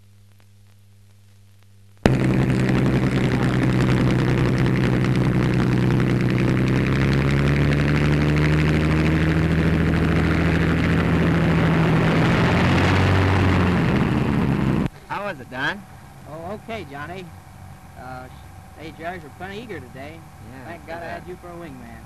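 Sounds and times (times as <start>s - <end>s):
propeller aircraft engine: 2.0s - 22.0s.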